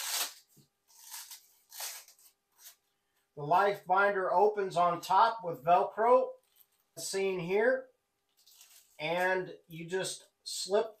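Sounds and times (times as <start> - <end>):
velcro ripping open: 0.0 - 2.8.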